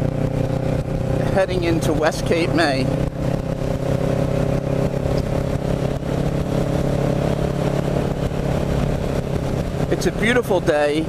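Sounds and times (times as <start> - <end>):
motorcycle engine cruising: 0.0 - 11.0
wind rush over microphone: 0.0 - 11.0.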